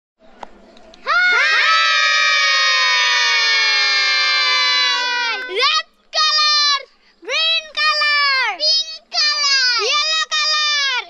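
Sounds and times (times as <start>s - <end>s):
children shouting together: 1.1s - 6.9s.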